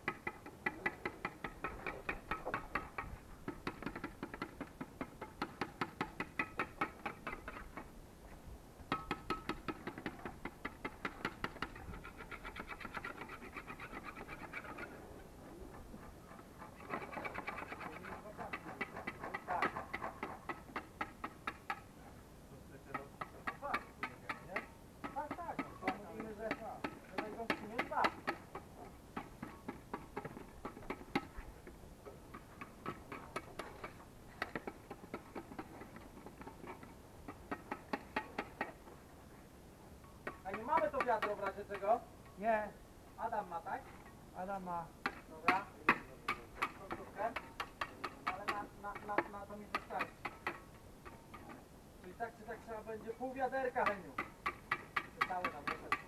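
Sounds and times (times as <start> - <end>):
person speaking: 22.5 - 28.2, 40.4 - 47.4, 55.2 - 56.0.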